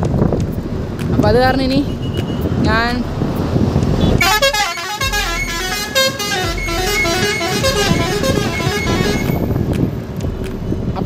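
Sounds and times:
road and wind noise: 0.0 - 11.0
truck horn: 4.0 - 9.5.

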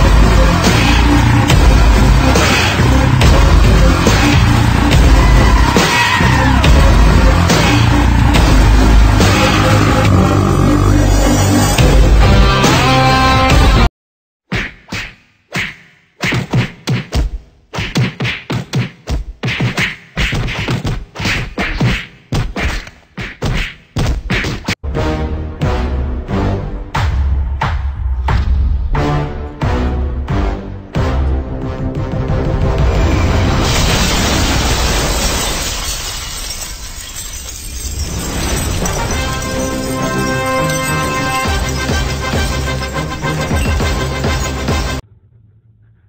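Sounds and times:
music with steady bass: 0.0 - 13.9
loud shattering crash: 33.1 - 45.0.

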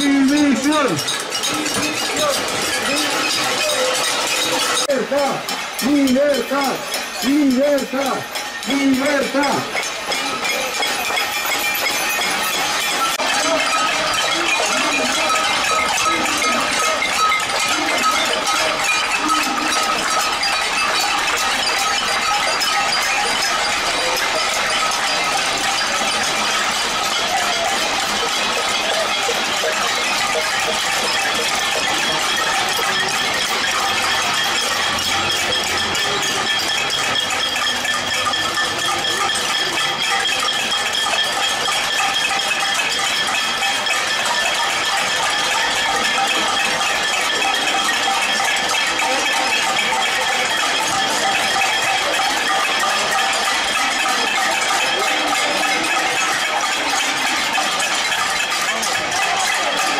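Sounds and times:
crowd banging pots and pans: 0.0 - 59.9.

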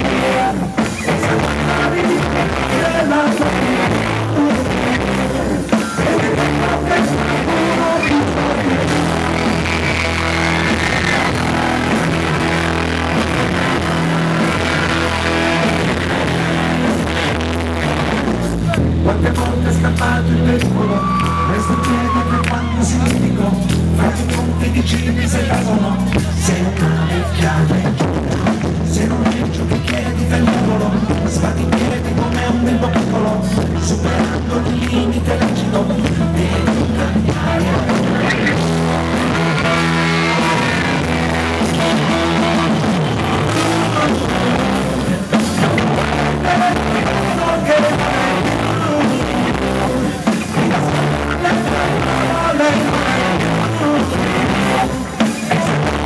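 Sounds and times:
drums: 0.0 - 56.0
electric guitar: 0.0 - 56.0
low bass notes: 0.0 - 56.0.

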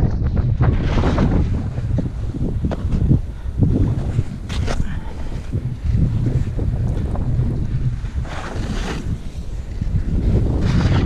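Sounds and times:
wind buffeting microphone: 0.0 - 11.0
skis scraping through snow: 0.4 - 11.0.

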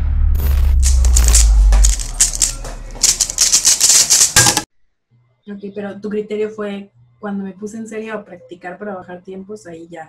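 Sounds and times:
deep bass rumble: 0.0 - 3.5
fast rattling clatter of clicks: 0.8 - 4.6.

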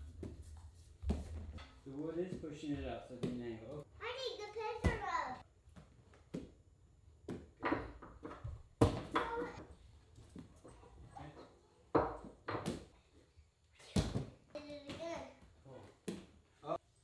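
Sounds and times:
bare feet thumping on mats: 0.1 - 1.6.

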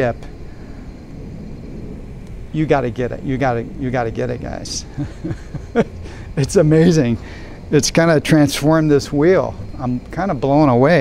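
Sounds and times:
man speaking: 0.0 - 0.3, 2.5 - 5.4, 6.3 - 11.0
low background rumble: 0.0 - 11.0.

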